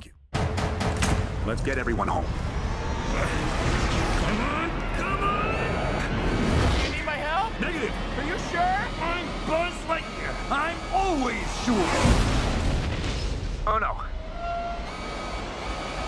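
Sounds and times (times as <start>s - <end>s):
trailer music: 0.0s - 16.0s
spaceship thrusters rumbling: 1.4s - 16.0s.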